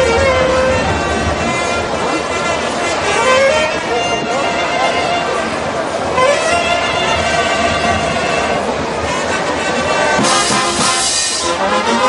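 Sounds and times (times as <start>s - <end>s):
wind band playing: 0.0s - 12.0s.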